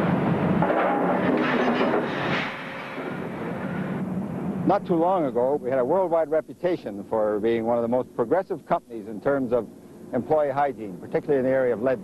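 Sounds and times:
industrial machinery hum: 0.0s - 12.0s.

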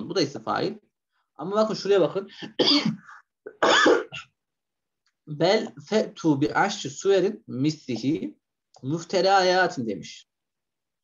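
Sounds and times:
man coughing: 2.4s - 4.4s.

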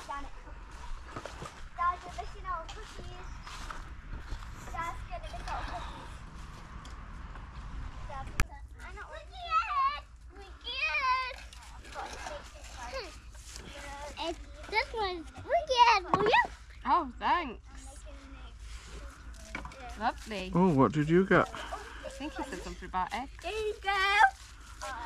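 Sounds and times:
children chattering and calling: 0.0s - 6.8s, 8.0s - 16.7s, 17.5s - 20.3s, 21.1s - 25.0s.

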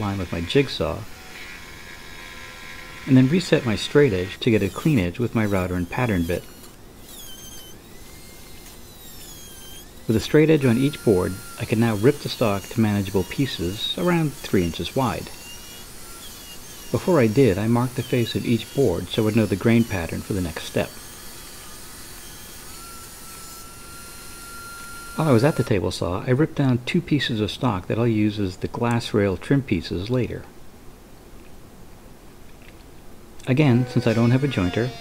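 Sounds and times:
table saw ripping a board: 0.0s - 25.7s, 33.6s - 35.0s
router whining: 0.0s - 25.8s, 33.4s - 35.0s.

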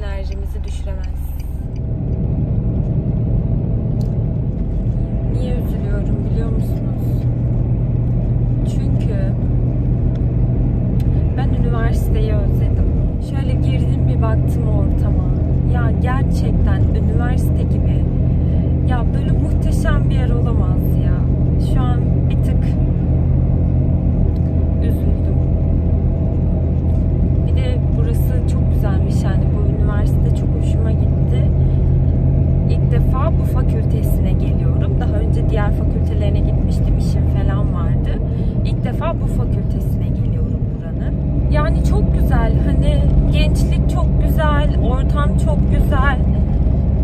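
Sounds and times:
car engine and road rumble: 0.0s - 47.0s.

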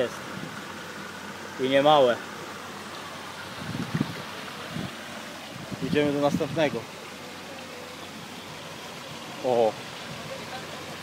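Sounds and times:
water trickling into pond: 0.0s - 11.0s.

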